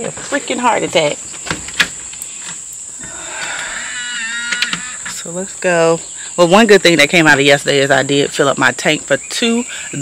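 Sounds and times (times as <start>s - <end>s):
insects droning in trees: 0.0s - 10.0s.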